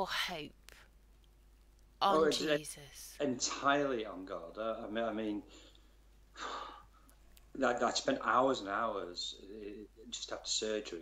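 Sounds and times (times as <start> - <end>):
man speaking: 2.1 - 2.6, 3.2 - 5.6, 7.5 - 11.0
man breathing in: 5.5 - 7.1.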